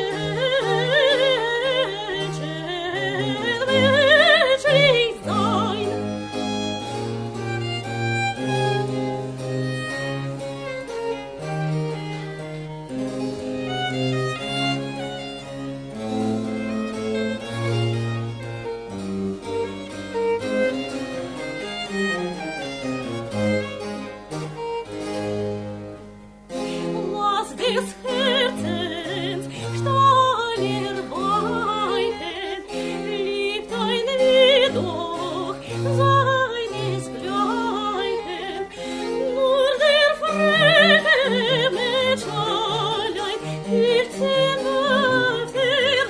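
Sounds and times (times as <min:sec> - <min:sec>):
soprano singing with vibrato: 0:00.0 - 0:06.8, 0:26.7 - 0:46.0
cello: 0:00.0 - 0:46.0
violin melody: 0:00.0 - 0:46.0.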